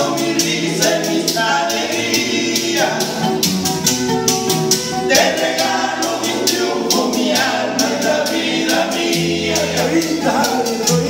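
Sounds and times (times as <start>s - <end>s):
men singing in harmony: 0.0s - 3.6s, 4.9s - 11.0s
acoustic guitars strumming: 0.0s - 11.0s
maracas shaking: 0.0s - 11.0s.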